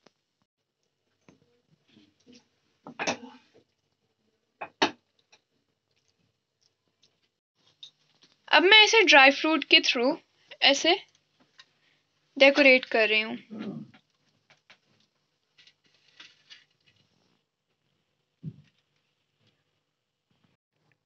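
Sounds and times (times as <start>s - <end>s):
woman speaking: 8.5s - 11.0s, 12.4s - 13.4s
soft low thump: 18.4s - 18.7s.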